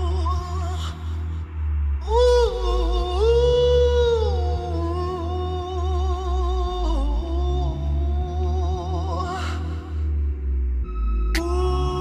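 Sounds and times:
pulsing bass beat: 0:00.0 - 0:12.0.

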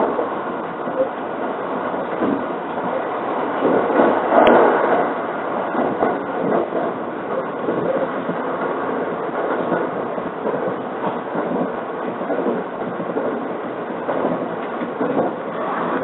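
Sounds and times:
train wheels rumbling on rails: 0:00.0 - 0:16.0.

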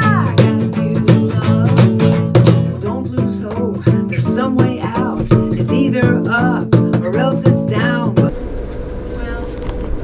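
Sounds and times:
acoustic guitar music: 0:00.0 - 0:09.8
ship engines rumbling: 0:02.8 - 0:10.0.

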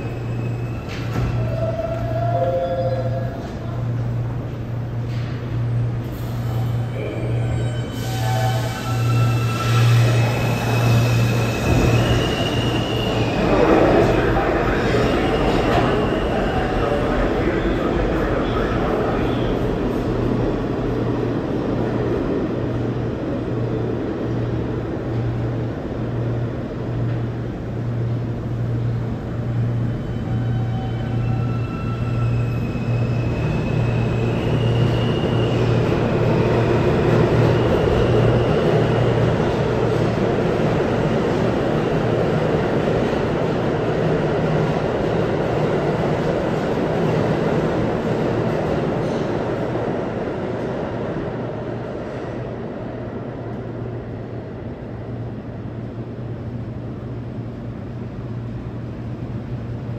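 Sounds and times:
subway train rumble: 0:00.0 - 0:59.9.

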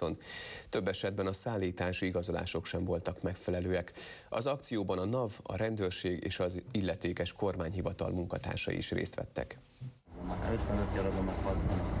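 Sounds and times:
people talking: 0:10.2 - 0:12.0
vendor speaking: 0:10.3 - 0:12.0.

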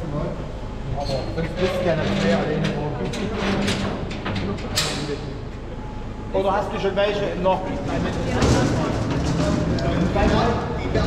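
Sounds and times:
chatter of a small group: 0:00.8 - 0:11.0.

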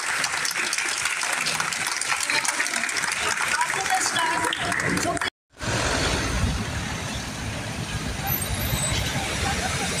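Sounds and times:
cars driving by: 0:03.2 - 0:10.0.

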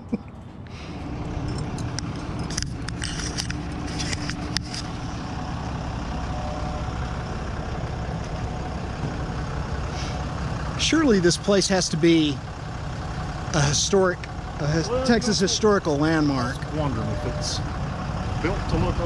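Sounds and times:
vehicle engine idling: 0:00.0 - 0:19.0.

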